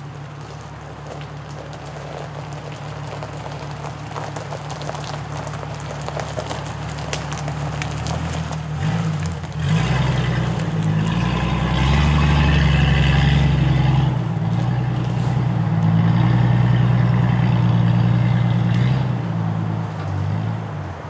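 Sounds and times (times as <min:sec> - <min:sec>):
vehicle engines running at low revs: 0:00.0 - 0:21.0.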